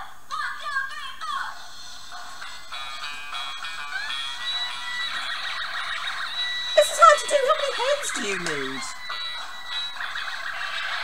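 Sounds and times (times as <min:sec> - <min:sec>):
toy instrument playing song clip: 0:01.7 - 0:11.0.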